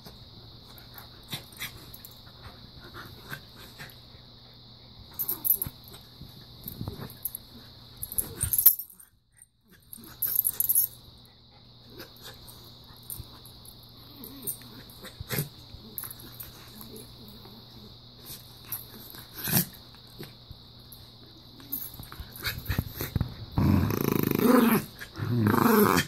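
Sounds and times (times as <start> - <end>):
dogs play-fighting: 0.0 - 26.0.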